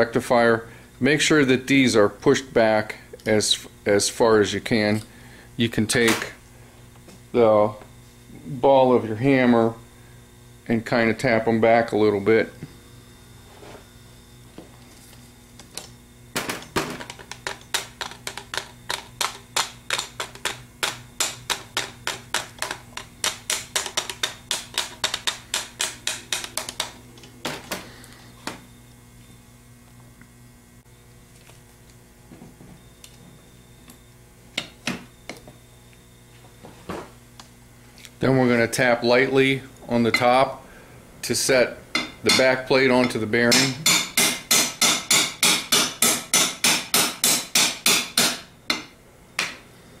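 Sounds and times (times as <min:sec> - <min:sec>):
hammer tapping on metal: 0:18.3 - 0:27.0, 0:42.0 - 0:49.6.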